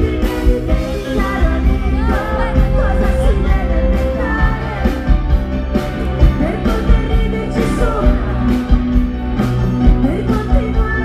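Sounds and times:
live pop-rock band music: 0.0 - 11.0
woman singing lead vocal: 0.0 - 11.0.

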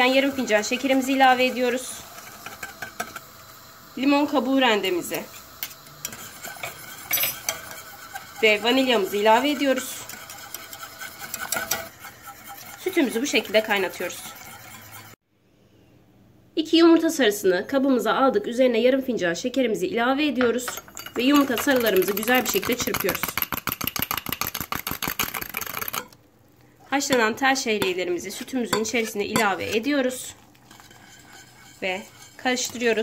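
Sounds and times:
whisk scraping a steel pot: 0.0 - 15.2, 20.8 - 26.2, 26.8 - 33.0.

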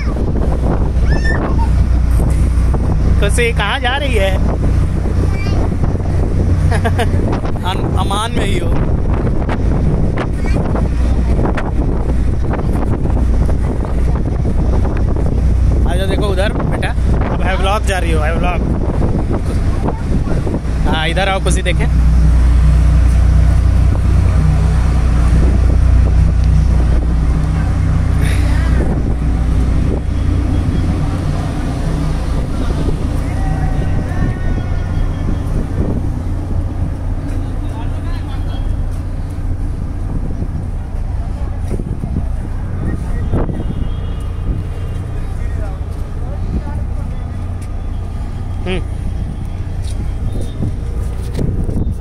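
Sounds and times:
ferry engines droning: 0.0 - 52.0
wind on microphone: 0.0 - 52.0.

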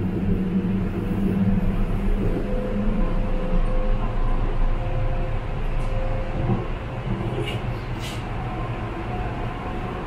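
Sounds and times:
train rumbling on track: 0.0 - 10.0.

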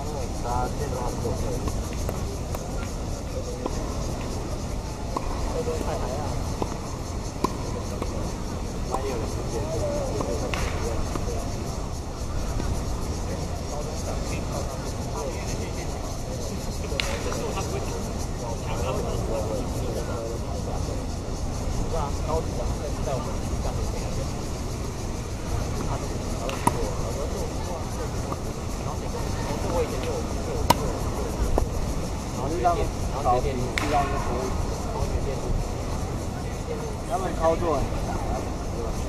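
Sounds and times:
indistinct voices: 0.0 - 39.0
tennis ball struck by racket: 7.4 - 8.1, 10.5 - 10.8, 26.5 - 26.9, 30.0 - 30.9, 33.8 - 34.3.

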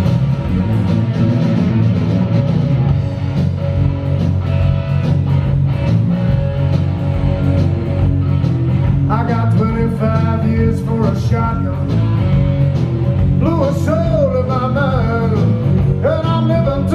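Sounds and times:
bass guitar: 0.0 - 16.9
drums: 0.0 - 16.9
electric guitar: 0.0 - 16.9.

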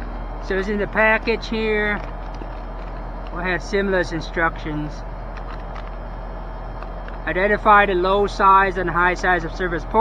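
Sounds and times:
air conditioner unit humming: 0.0 - 10.0.

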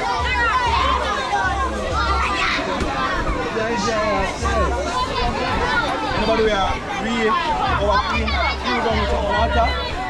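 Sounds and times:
children calling and chattering: 0.0 - 10.0
crowd talking: 0.0 - 10.0.

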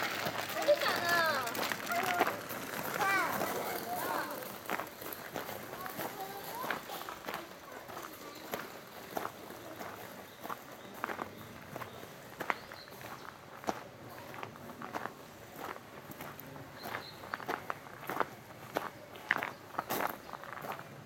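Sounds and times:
faint voices: 0.0 - 21.0
footsteps on gravel: 0.0 - 21.0.

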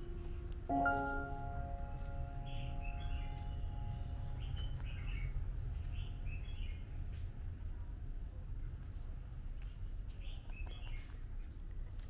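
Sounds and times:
birds chirping: 0.0 - 7.0
steady low rumble: 0.0 - 10.5
chime ringing: 0.7 - 2.4.

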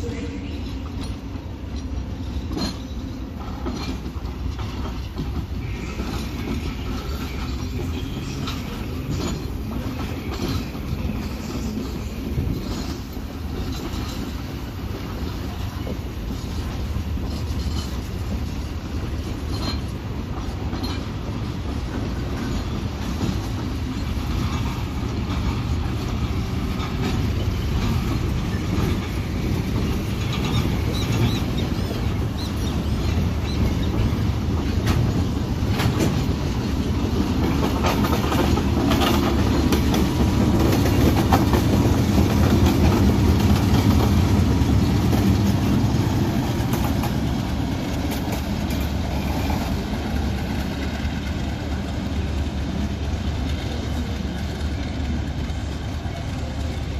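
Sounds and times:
train wheels clicking over rail joints: 0.2 - 56.9.

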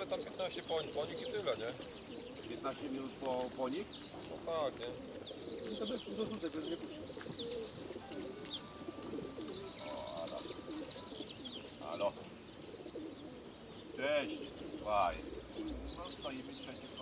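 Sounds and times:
pigeons cooing: 0.0 - 17.0
high bird chirps: 5.2 - 17.0.

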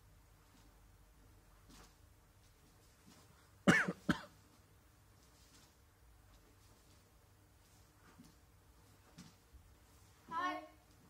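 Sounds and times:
person coughing: 3.6 - 4.4.

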